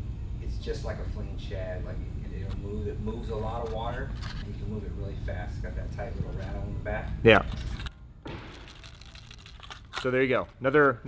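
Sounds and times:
plastic packaging crinkling: 7.5 - 10.4
fishing lure rattle: 8.4 - 10.2.

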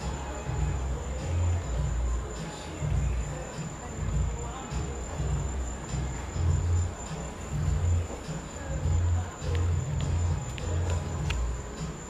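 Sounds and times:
crickets trilling: 0.0 - 12.0
distant music bass notes: 0.0 - 12.0.

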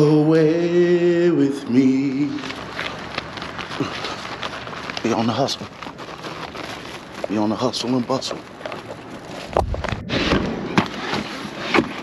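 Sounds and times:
plastic bag rustling: 0.0 - 12.0.

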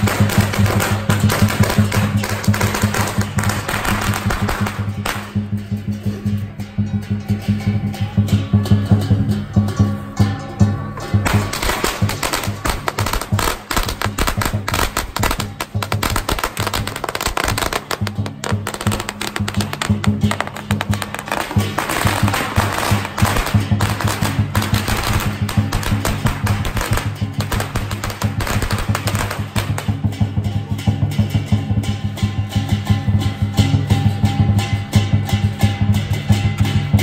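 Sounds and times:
firecrackers popping: 0.0 - 5.6, 11.2 - 30.6.

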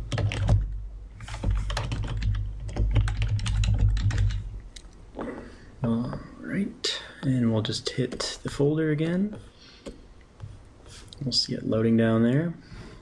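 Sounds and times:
typing on keyboard: 0.1 - 4.4.

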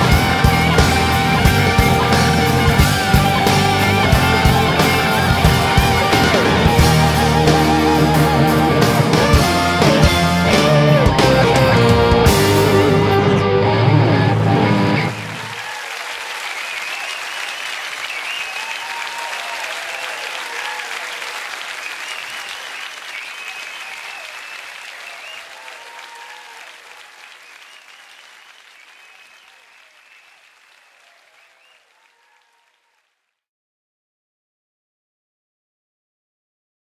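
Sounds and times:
live band final chord: 0.0 - 15.6
cheering voices: 0.0 - 33.0
audience applauding: 0.0 - 33.2.

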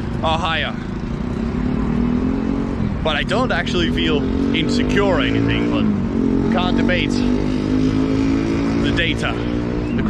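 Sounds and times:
low traffic rumble: 0.0 - 10.0
vehicle engine hum: 0.0 - 10.0.

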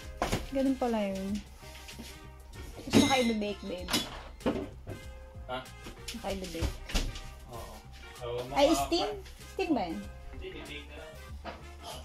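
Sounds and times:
background music with sustained tones: 0.0 - 12.0.

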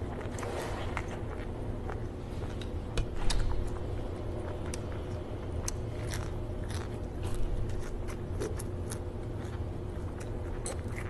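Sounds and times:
steady low hum: 0.0 - 11.0
chewing crisp lettuce: 4.3 - 11.0.

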